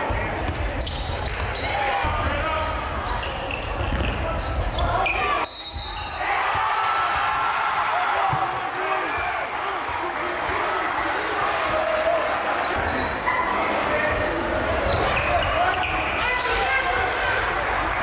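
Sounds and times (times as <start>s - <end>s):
echoing voices of players and crowd: 0.0s - 18.0s.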